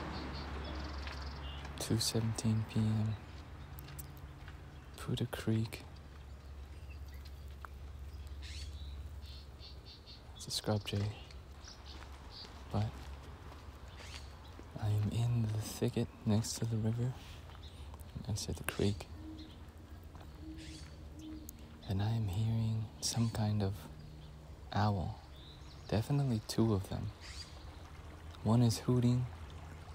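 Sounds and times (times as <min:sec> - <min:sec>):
jay calling: 0:08.4 - 0:10.3, 0:18.6 - 0:22.0, 0:27.1 - 0:27.7
owl cooing: 0:18.6 - 0:22.0
owl hooting: 0:18.7 - 0:22.0.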